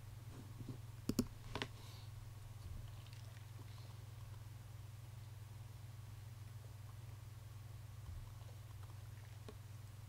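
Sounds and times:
low steady hum: 0:00.0 - 0:10.0
computer mouse clicks: 0:01.1 - 0:01.7.

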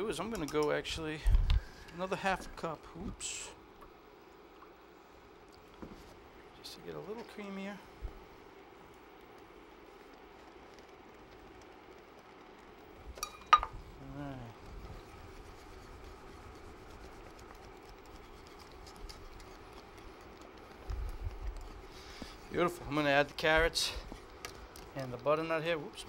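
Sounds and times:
steady low hum: 0:00.0 - 0:26.0
whisk stirring in a metal pan: 0:14.6 - 0:26.0.

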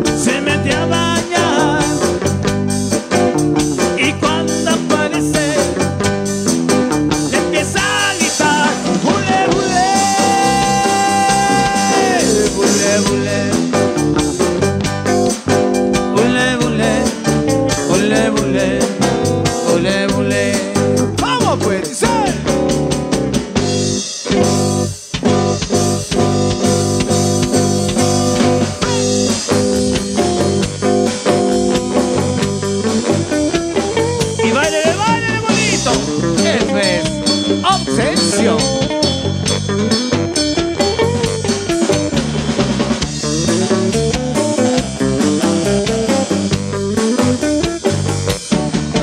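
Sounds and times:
live rock and roll band: 0:00.0 - 0:49.0.

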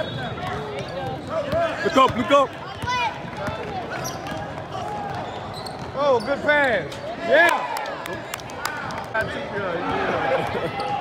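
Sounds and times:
large hall background noise: 0:00.0 - 0:11.0.

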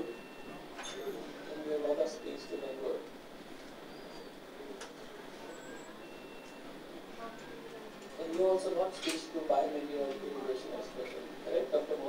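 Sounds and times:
faint high-pitched tones: 0:00.0 - 0:03.1, 0:03.8 - 0:08.0.

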